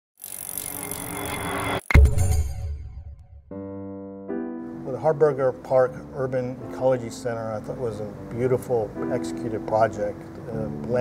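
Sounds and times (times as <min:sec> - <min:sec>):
loud deep hit: 0:02.0 - 0:03.6.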